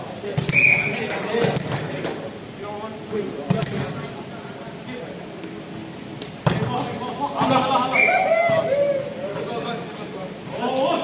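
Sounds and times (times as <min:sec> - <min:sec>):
volleyball thudding in a hall: 0:00.0 - 0:04.2, 0:05.5 - 0:09.8.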